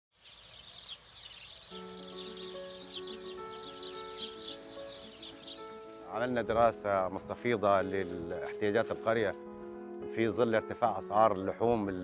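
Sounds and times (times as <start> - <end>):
small birds chirping: 0.1 - 6.6.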